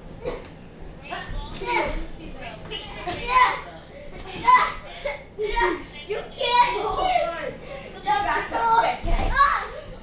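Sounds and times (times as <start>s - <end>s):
children shouting and yelling: 8.1s - 9.9s.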